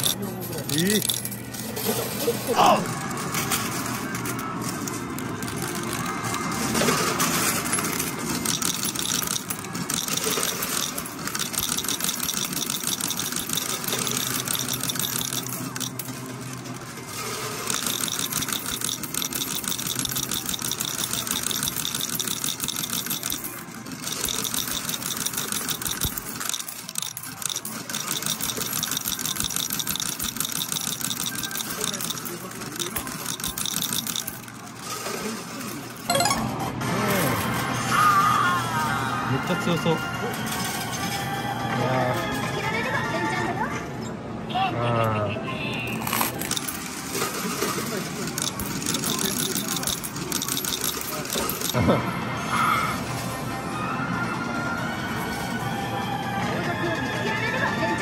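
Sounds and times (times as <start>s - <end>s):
metal medals clinking and clattering: 0.0s - 16.3s, 17.1s - 36.4s, 46.0s - 51.8s
arcade noise: 0.0s - 43.4s, 45.6s - 58.0s.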